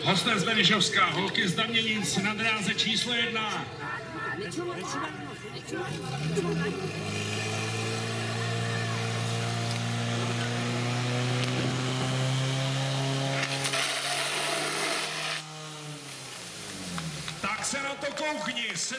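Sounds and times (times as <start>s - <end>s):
pump engine running at high revs: 6.2s - 17.5s.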